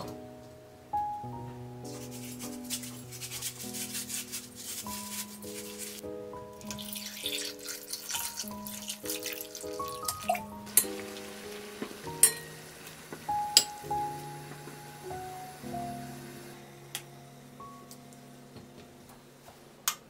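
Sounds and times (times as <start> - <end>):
soft instrumental music: 0.0 - 19.8
water splashing into bowl: 6.6 - 11.4.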